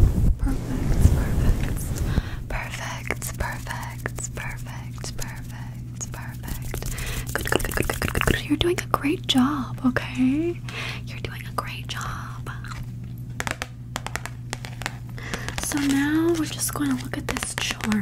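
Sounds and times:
low electrical hum: 0.0s - 18.0s
wavering hum: 0.3s - 13.4s
person whispering: 0.5s - 7.9s
hand sounds: 2.6s - 8.4s, 13.4s - 18.0s
mouth clicks: 6.7s - 8.4s.

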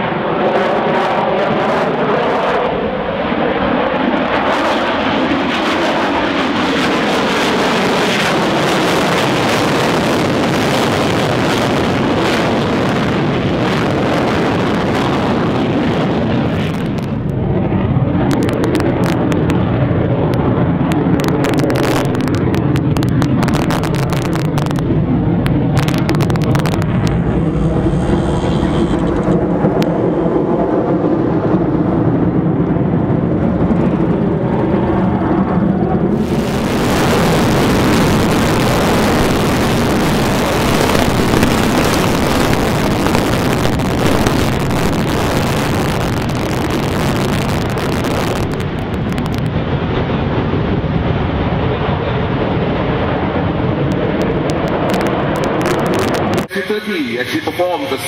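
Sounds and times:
fighter jet rumble: 0.0s - 58.0s.

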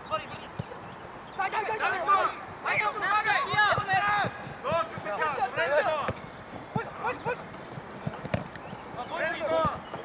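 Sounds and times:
football being kicked: 3.4s - 5.4s, 6.0s - 6.9s, 8.0s - 8.8s.

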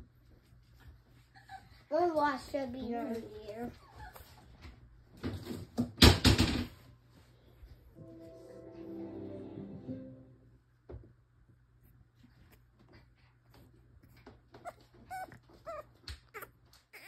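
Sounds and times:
puppy whimpering and yipping: 1.3s - 1.9s, 3.7s - 4.4s, 14.5s - 17.0s.

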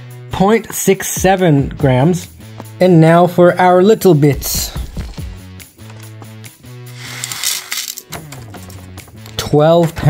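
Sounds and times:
background music with held notes: 0.0s - 10.0s
gold flakes rattling into plastic: 7.0s - 8.8s.

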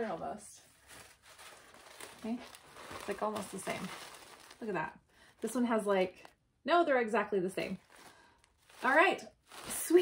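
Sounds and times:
shirts rustling and crinkling: 0.0s - 6.4s, 7.6s - 10.0s.

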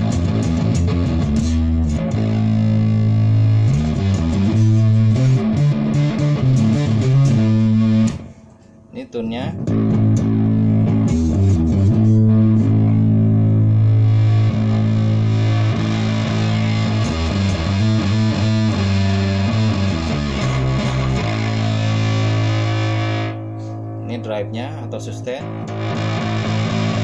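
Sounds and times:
distorted electric bass notes: 0.0s - 8.5s, 9.1s - 27.0s.

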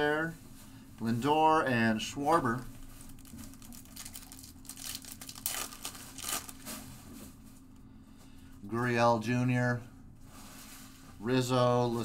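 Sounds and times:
foil wrapper crinkling: 2.7s - 6.9s.

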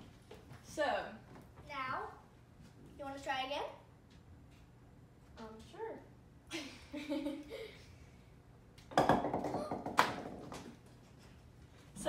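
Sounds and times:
rubber balls bouncing on wood: 8.8s - 11.0s.

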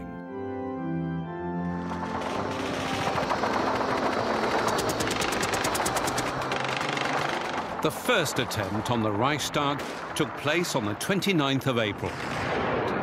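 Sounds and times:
machine-gun burst: 1.8s - 13.0s
gunfire: 2.0s - 13.0s.

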